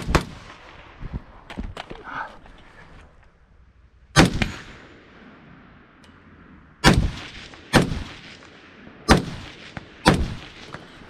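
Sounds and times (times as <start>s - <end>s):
rifle shots echoing: 0.0s - 1.0s, 4.1s - 11.0s.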